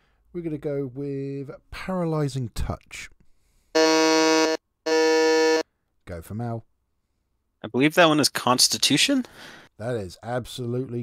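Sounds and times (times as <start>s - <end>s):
electronic buzz-in tones: 3.8s - 5.6s.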